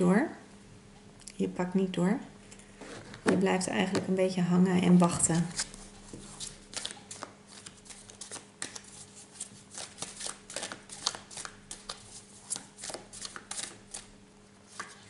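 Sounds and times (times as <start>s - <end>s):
faint steady hum: 0.0s - 15.0s
cards being shuffled: 5.2s - 14.1s.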